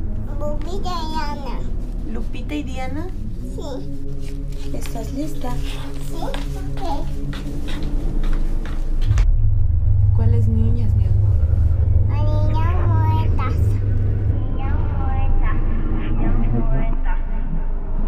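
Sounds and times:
child's high-pitched voice: 0.3 - 1.7, 3.5 - 3.9, 6.0 - 7.2, 12.1 - 13.8.

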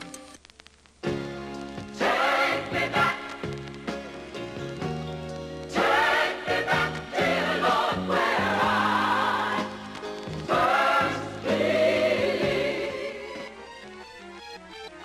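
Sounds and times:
instrumental backing: 0.0 - 15.0
gospel choir singing: 2.0 - 3.5, 5.7 - 13.7.

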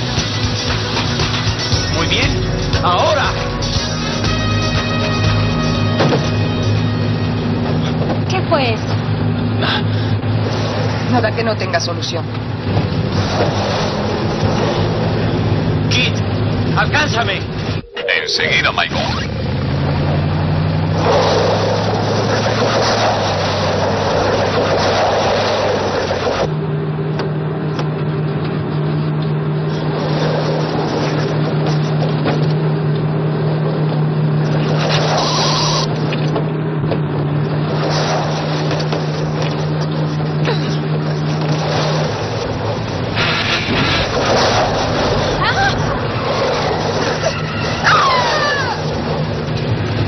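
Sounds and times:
vehicle engine drone: 0.0 - 50.0.

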